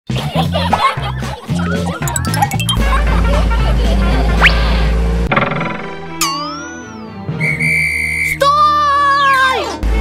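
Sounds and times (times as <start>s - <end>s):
swooping whistle tone: 6.9s - 8.4s
rising whistle: 7.0s - 8.4s.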